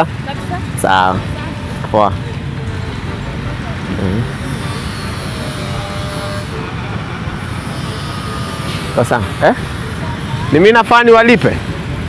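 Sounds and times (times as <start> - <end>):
faint voices: 0.0 - 12.0
traffic rumble: 0.0 - 12.0.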